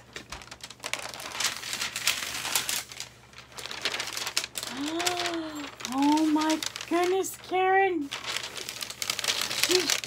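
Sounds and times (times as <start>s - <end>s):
packaging rustling and crinkling: 0.0s - 10.0s.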